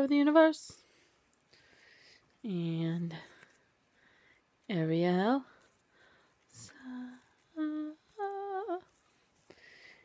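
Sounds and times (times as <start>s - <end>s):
woman humming: 6.6s - 9.0s.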